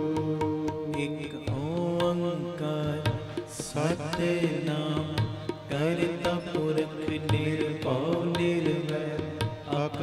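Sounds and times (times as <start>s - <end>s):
tabla strokes: 0.0s - 10.0s.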